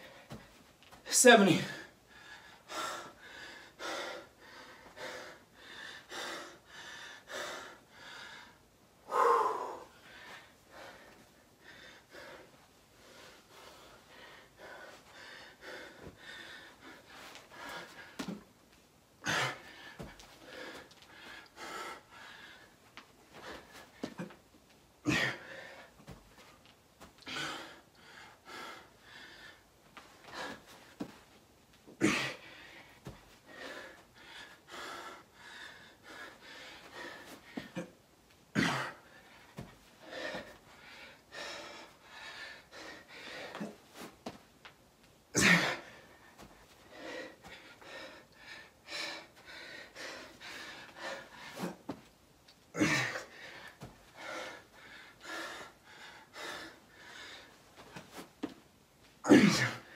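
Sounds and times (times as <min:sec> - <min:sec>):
man breathing heavily: 0:00.0 - 0:44.4, 0:45.2 - 0:58.6.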